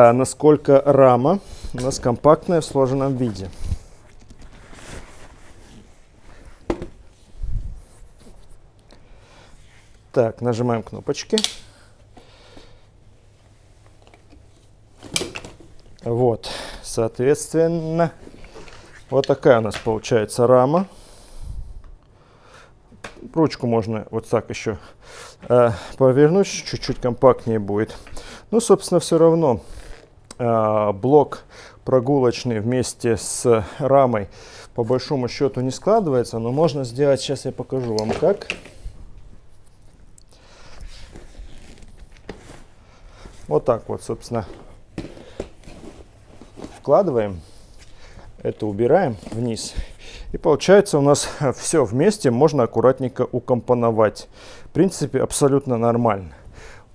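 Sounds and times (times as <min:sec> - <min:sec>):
fabric rustling: 0:01.7 - 0:08.7, 0:40.9 - 0:49.8.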